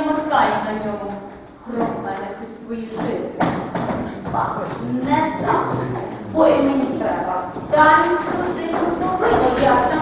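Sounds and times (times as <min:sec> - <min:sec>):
women speaking: 0:00.0 - 0:03.6, 0:04.2 - 0:10.0.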